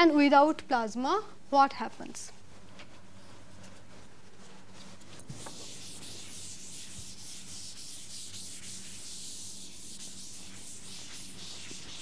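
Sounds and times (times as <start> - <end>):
pen scratching on paper: 5.3 - 12.0.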